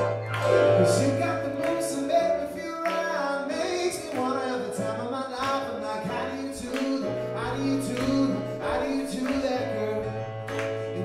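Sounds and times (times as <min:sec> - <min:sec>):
person singing: 0:00.0 - 0:10.2
pop song on stage keyboard: 0:00.0 - 0:11.0.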